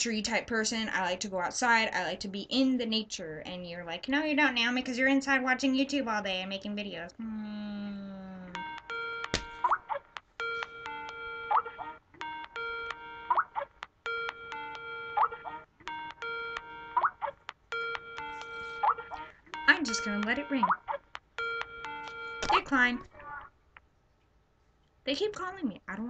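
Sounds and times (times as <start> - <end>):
phone ringtone melody: 8.6 - 23.0.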